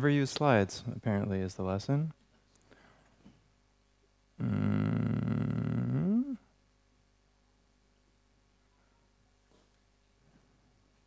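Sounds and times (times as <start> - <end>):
man groaning low uhhh: 4.4 - 6.5.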